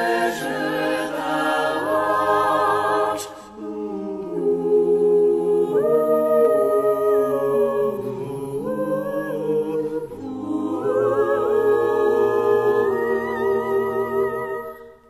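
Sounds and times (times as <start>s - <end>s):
choir singing sustained chords: 0.0s - 15.0s.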